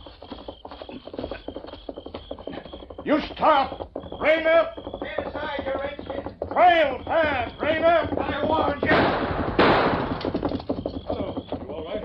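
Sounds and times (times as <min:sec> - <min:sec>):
galloping horse hoofbeats: 0:00.0 - 0:12.0.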